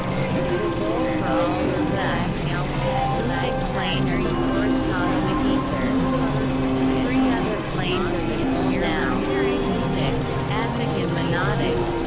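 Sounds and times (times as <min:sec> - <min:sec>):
synthesizer drone: 0:00.0 - 0:12.0
warbling high synth sweeps: 0:00.0 - 0:12.0.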